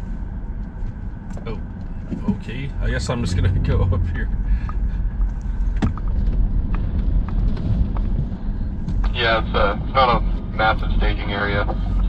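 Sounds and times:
vehicle engine and tyres rumbling: 0.0s - 12.0s.

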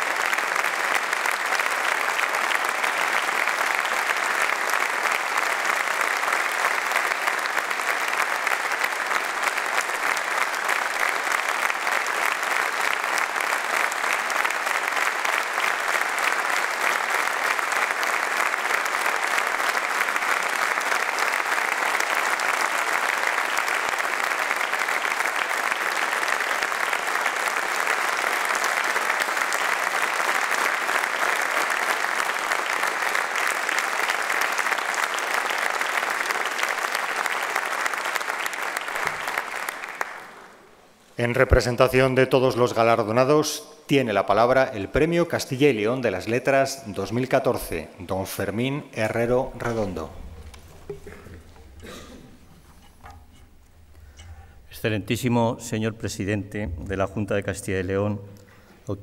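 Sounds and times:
audience applauding: 0.0s - 40.9s, 49.0s - 54.5s.

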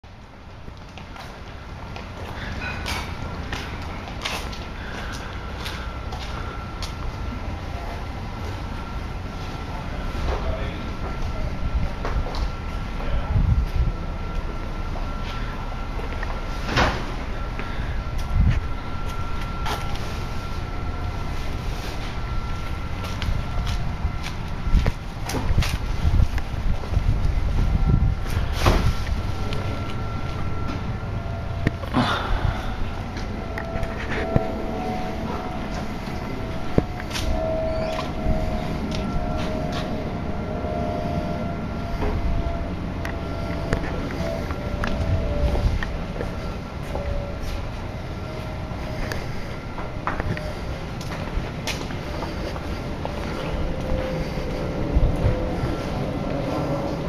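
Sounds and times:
steady low rumble: 0.0s - 57.0s
footsteps on concrete: 0.5s - 7.2s, 21.3s - 30.8s, 48.8s - 57.0s
faint high-pitched tone: 5.4s - 25.5s, 27.3s - 51.3s
faint high tone: 29.2s - 50.9s.

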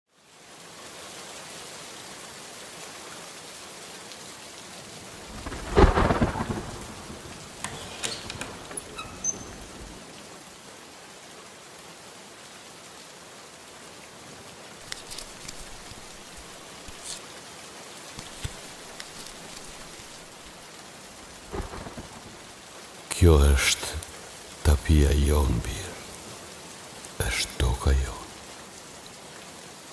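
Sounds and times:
steady rain: 0.1s - 29.9s
thunderclap rumbling: 5.3s - 7.7s.

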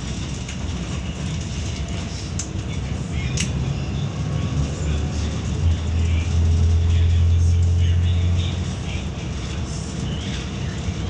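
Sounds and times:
bus engine drone: 0.0s - 11.0s
road and tyre noise: 0.0s - 11.0s.

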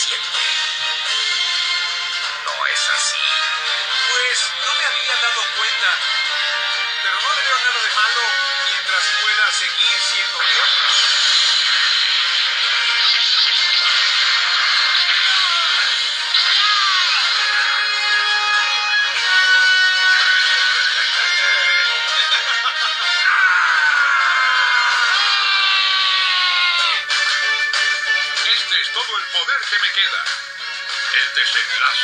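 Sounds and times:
dramatic music through tv speaker: 0.0s - 32.0s.

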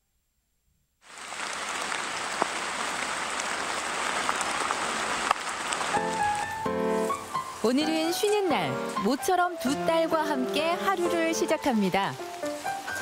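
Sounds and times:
steady rain falling: 1.0s - 13.0s.

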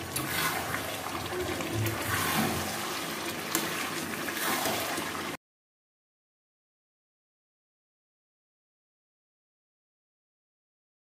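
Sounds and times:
gravy sizzling and sloshing: 0.0s - 5.4s.

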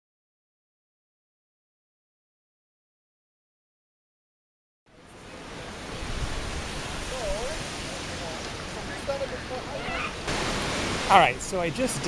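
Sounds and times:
ocean surf: 4.9s - 12.0s
wind: 4.9s - 12.0s.

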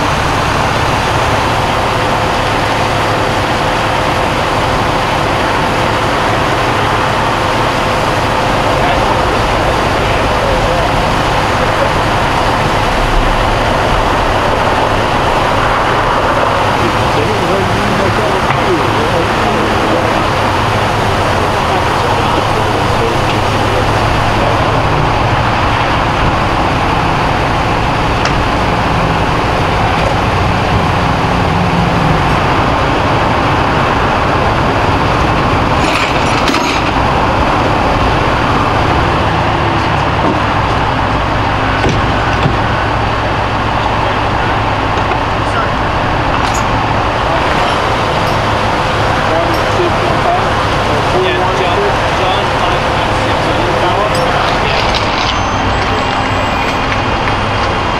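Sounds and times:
diesel engine running: 0.0s - 57.9s
indistinct voices: 0.0s - 57.9s.

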